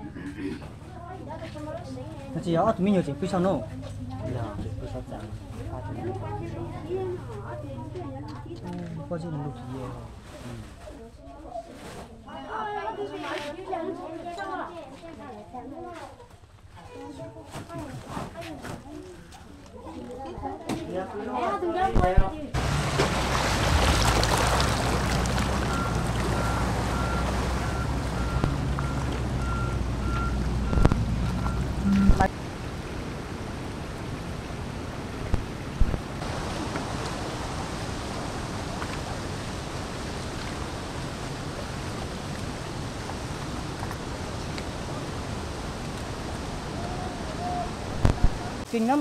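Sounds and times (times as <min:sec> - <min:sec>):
mud and water flowing: 0:22.0 - 0:49.0
excavator diesel engine running: 0:22.6 - 0:32.3
high warning beeps: 0:25.8 - 0:32.3.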